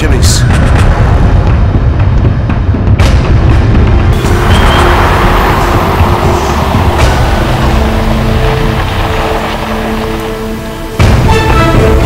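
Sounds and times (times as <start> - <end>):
dramatic score music: 0.0 - 12.0
car driving: 4.1 - 12.0.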